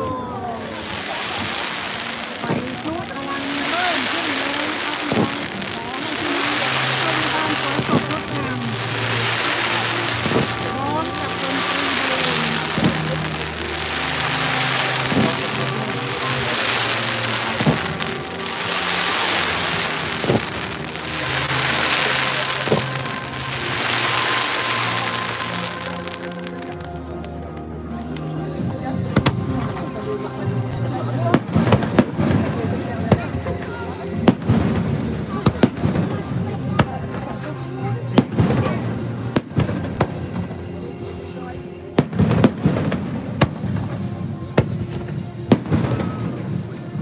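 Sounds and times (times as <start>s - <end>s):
crowd chatter: 0.0s - 47.0s
fireworks crackling: 0.0s - 47.0s
music with long low notes: 0.0s - 47.0s
sharp firework report: 0.2s - 41.4s, 42.0s - 47.0s.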